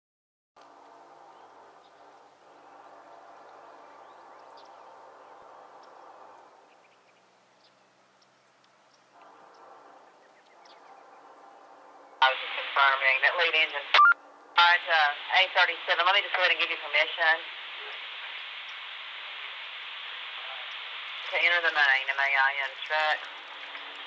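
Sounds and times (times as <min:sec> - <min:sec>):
birds chirping: 0:00.6 - 0:14.6, 0:15.6 - 0:24.0
distant train air horn blasts: 0:09.1 - 0:12.2.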